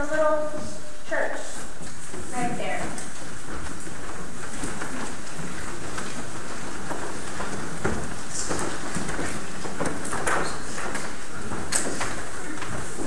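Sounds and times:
footsteps and shuffling: 0.0 - 13.0.

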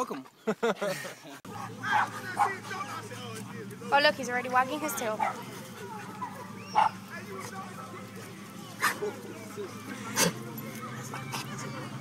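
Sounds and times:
dogs whimpering: 4.8 - 7.1, 8.2 - 12.0.

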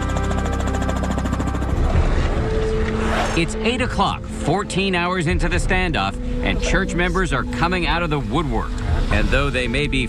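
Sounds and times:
background music: 0.0 - 10.0
helicopter rotor beating: 0.0 - 10.0.

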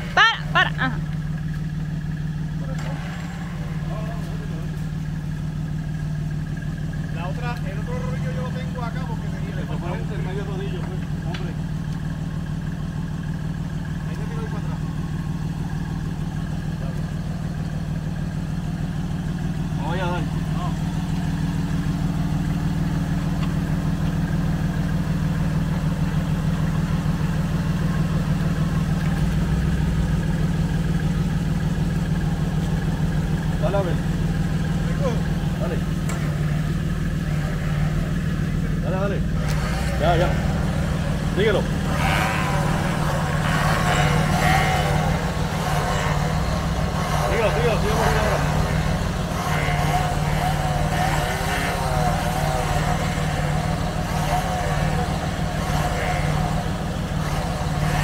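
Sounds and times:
truck engine idling: 0.0 - 58.0
indistinct voices calling out: 32.0 - 58.0.

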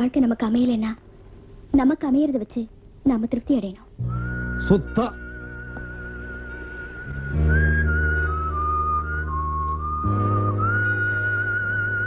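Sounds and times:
whistle-like melody: 4.0 - 12.0.

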